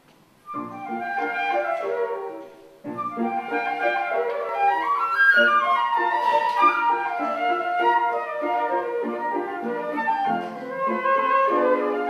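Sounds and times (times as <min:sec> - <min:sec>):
flutes playing a duet: 0:00.4 - 0:12.0.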